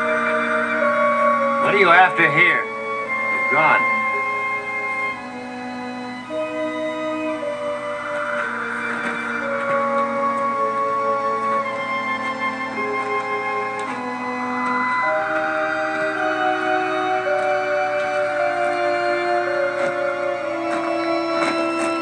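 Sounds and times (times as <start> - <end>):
orchestral music from television: 0.0 - 22.0.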